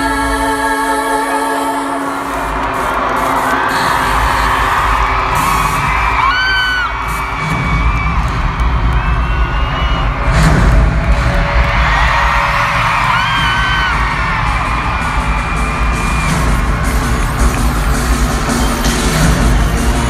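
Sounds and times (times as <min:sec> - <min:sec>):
crowd screaming and cheering: 0:00.0 - 0:20.0
loud music with heavy bass: 0:00.0 - 0:20.0
booming hit: 0:10.1 - 0:15.1.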